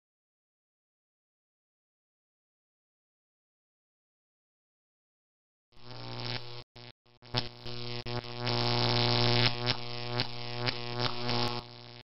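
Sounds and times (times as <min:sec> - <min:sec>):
crackling electric zaps: 0:05.8 - 0:12.0
neon sign buzzing hum: 0:05.8 - 0:12.0.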